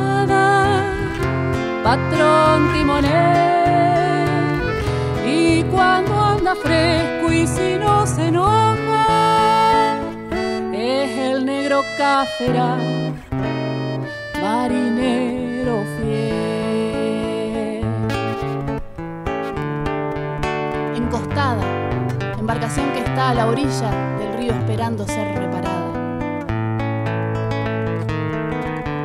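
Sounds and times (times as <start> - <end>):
accordion: 0.0 - 26.0
acoustic guitar: 0.0 - 29.0
bass notes: 0.0 - 29.0
sustained melody with vibrato: 0.0 - 29.0.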